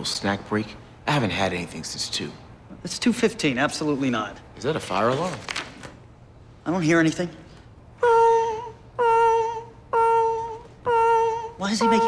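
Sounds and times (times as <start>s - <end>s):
man imitating alarm with voice: 8.0s - 12.0s.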